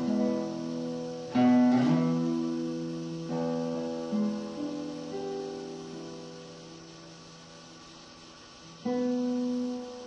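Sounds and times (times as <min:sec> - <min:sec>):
low sustained guitar note: 0:00.0 - 0:07.9
classical guitar notes: 0:00.0 - 0:10.0.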